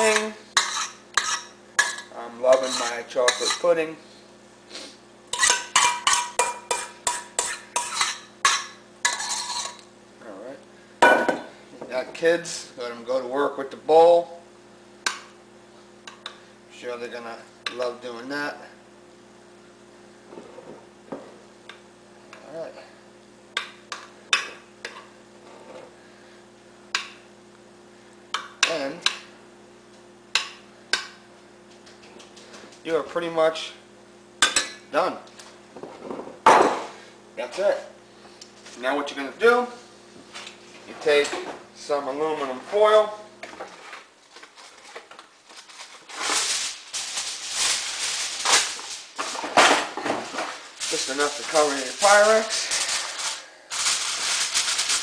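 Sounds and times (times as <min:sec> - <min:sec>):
metal spoon scraping steel bowl: 0:00.6 - 0:03.8, 0:05.3 - 0:09.8.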